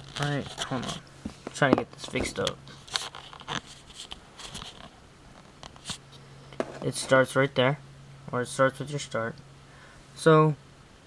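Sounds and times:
handling noises: 0.0 - 7.3.

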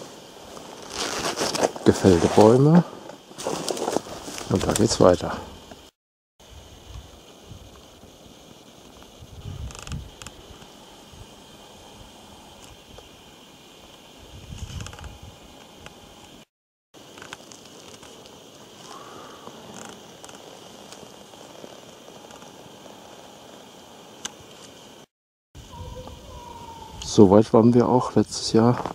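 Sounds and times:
steady hiss: 0.0 - 28.9.

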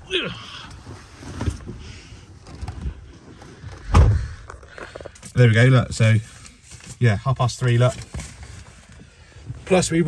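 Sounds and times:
handling and rustling: 0.8 - 9.8
heavy dull thump: 3.8 - 4.4.

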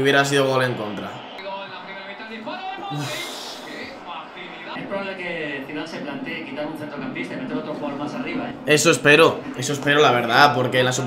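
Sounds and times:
man sighing: 2.9 - 4.0.

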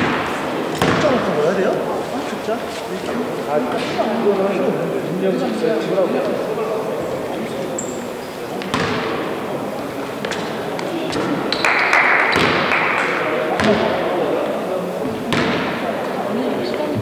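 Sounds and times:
indistinct echoing voices: 0.0 - 17.0
thuds and knocks on court: 0.8 - 1.3, 8.6 - 9.1, 12.3 - 12.7, 15.3 - 15.8.

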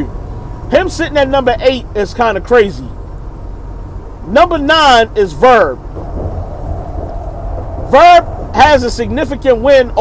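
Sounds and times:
truck engine idling: 0.0 - 10.0.

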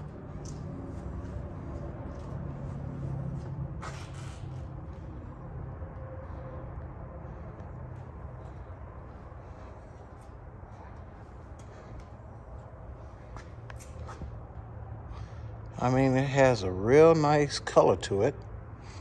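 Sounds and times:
low building hum: 0.0 - 19.0.

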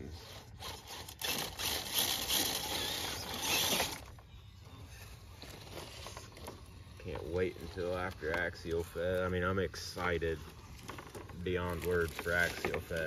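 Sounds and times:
rc car motor and gears: 0.0 - 4.2, 5.4 - 13.0
tires scrabbling on stone: 5.4 - 13.0.

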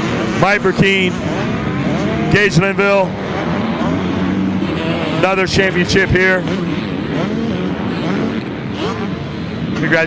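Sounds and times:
motocross bike engines revving: 0.0 - 10.0.

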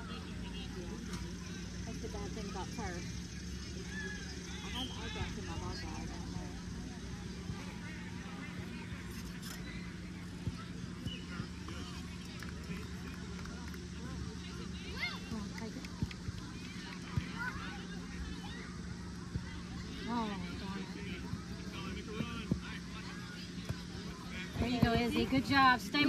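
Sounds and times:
distant shouts and calls: 0.0 - 13.4
steady low hum: 0.0 - 26.0.

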